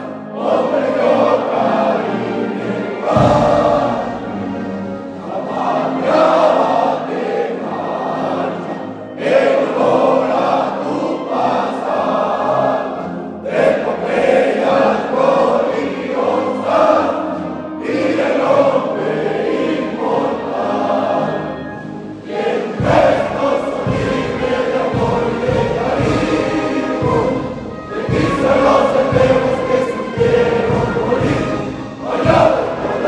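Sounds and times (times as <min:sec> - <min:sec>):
group singing a hymn: 0:00.0 - 0:33.0.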